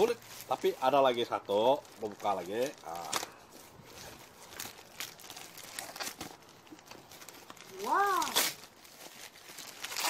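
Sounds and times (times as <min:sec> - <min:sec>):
plastic wrapping crinkling: 0:00.0 - 0:10.0.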